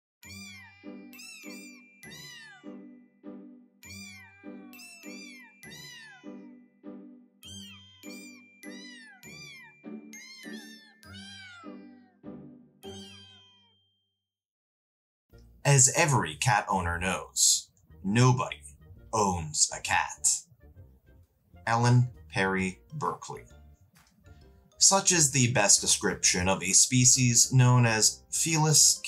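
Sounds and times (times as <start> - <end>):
tune of pitched cat meows: 0.2 - 3.1, 3.8 - 6.8, 7.4 - 13.8, 15.7 - 20.5, 21.7 - 23.6
narration: 15.7 - 20.4, 21.6 - 23.6, 24.8 - 29.0.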